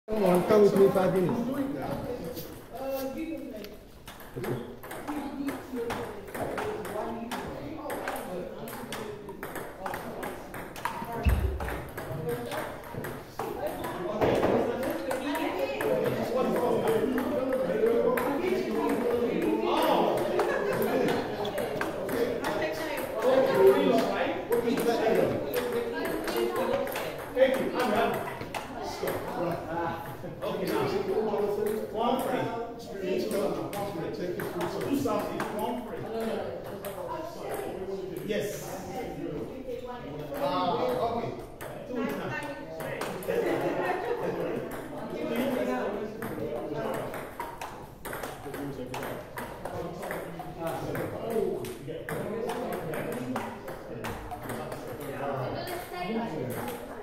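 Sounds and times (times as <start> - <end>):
voices chattering: 0.1 - 57.0
table tennis balls clicking: 0.2 - 2.7, 3.5 - 32.4, 33.2 - 38.3, 40.2 - 57.0.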